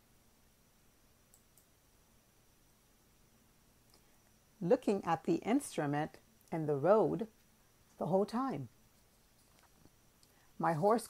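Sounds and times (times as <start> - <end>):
faint clicks: 1.3 - 1.7.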